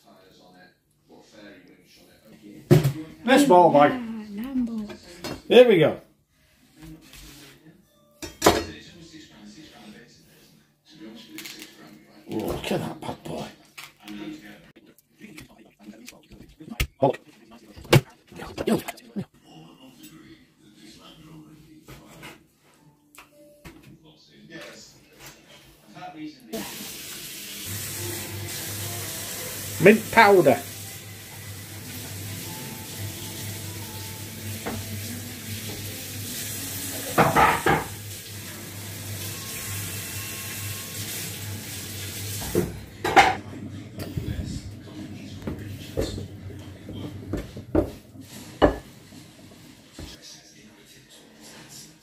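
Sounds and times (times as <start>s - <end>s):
kitchen hiss: 26.6s - 42.7s.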